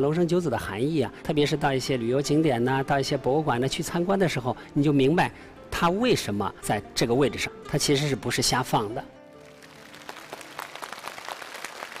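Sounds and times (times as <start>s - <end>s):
audience applauding: 9.4s - 12.0s.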